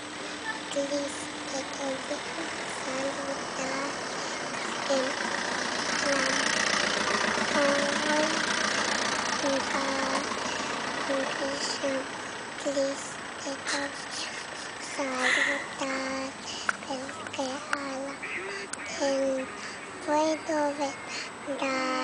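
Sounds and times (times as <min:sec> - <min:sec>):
girl singing wordless syllables: 0:00.4 - 0:06.7, 0:07.4 - 0:08.5, 0:09.3 - 0:22.0.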